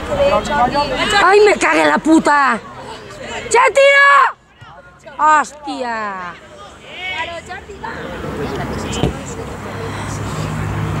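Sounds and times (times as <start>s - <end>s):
distant shouts: 0.0s - 10.6s
vehicle humming: 6.2s - 11.0s.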